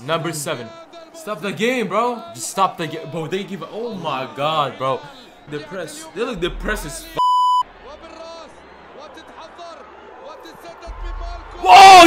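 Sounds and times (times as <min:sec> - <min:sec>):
commentator talking: 0:00.0 - 0:12.0
stadium crowd noise: 0:00.0 - 0:12.0.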